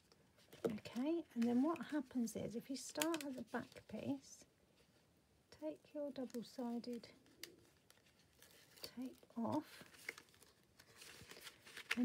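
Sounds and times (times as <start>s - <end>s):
card pages rustling: 2.9s - 4.2s, 6.2s - 12.0s.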